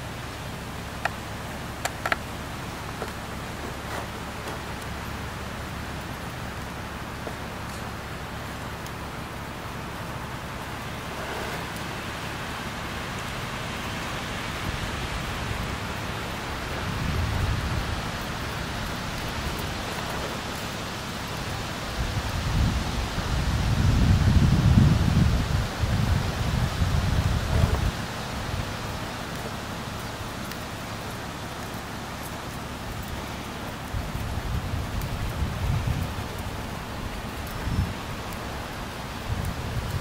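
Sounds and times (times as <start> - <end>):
wind on microphone: 14.6 - 20.4, 21.4 - 29.2, 33.9 - 40.0.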